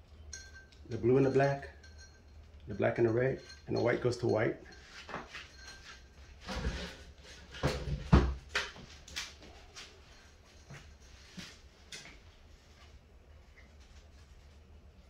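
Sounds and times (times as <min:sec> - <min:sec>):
handling knocks and rustles: 0:00.4 - 0:14.8.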